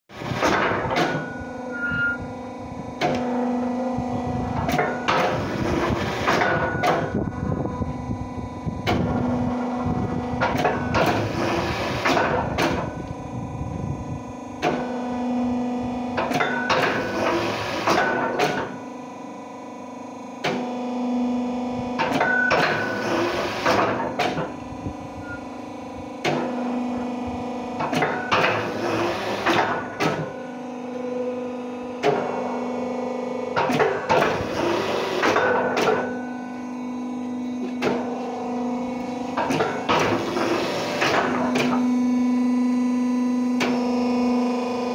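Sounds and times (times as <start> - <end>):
brick press humming: 0.1 - 44.9
press knocking and clanking: 0.2 - 1.5, 4.5 - 7.4, 10.4 - 13.0, 16.2 - 18.8, 22.0 - 24.6, 27.8 - 30.4, 33.6 - 36.3, 39.0 - 41.9.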